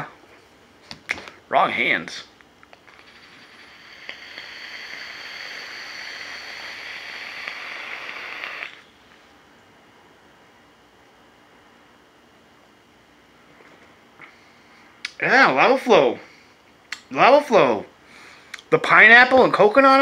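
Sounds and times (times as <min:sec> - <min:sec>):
vape coil sizzling: 0:02.6 - 0:09.0.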